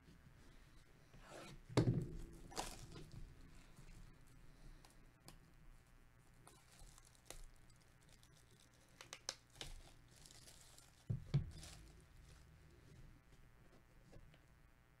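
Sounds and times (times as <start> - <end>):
shrink wrap crinkling: 2.2 - 3.9, 6.2 - 12.8.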